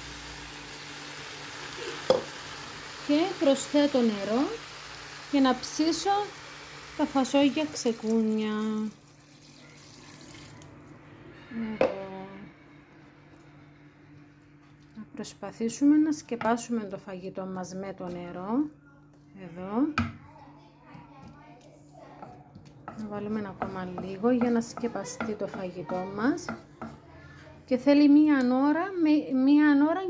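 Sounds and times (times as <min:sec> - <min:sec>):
water pouring into a pot: 0:06.6 - 0:10.8.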